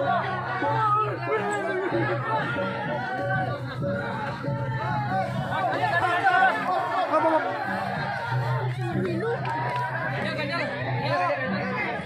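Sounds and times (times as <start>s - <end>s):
crowd of men shouting: 0.0s - 12.0s.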